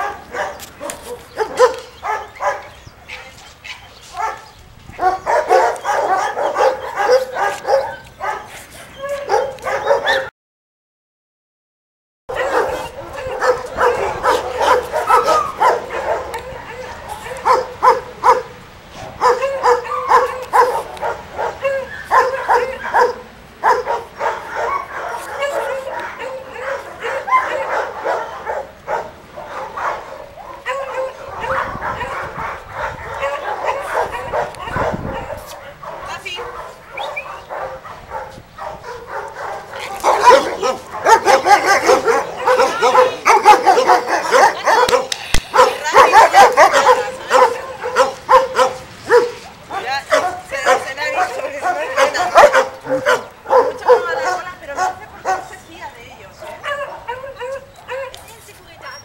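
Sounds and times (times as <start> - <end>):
dogs barking and yipping: 0.0 - 10.3, 12.3 - 59.0.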